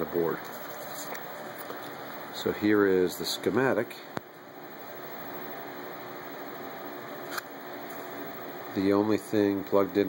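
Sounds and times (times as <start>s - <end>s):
fan noise: 0.0s - 10.0s.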